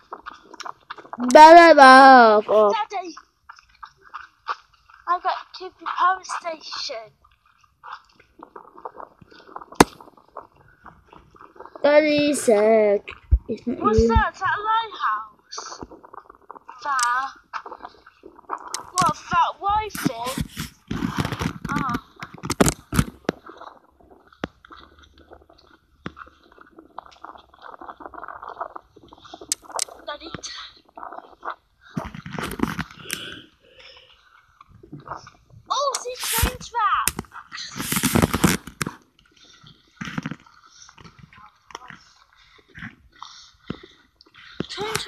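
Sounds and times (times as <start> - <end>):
crackling and rustling: 0.0 - 45.0
small smacking noises: 0.0 - 45.0
young child's voice: 1.2 - 3.2, 5.1 - 7.1, 11.8 - 15.3, 16.8 - 17.4, 18.9 - 20.4, 30.0 - 30.8, 35.7 - 37.1, 44.7 - 45.0
sharp clicks: 16.8 - 17.3, 18.6 - 20.5.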